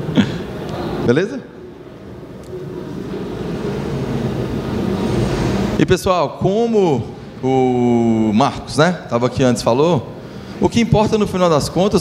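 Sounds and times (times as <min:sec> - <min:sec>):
low rumble and hum of hall: 0:00.0 - 0:12.0.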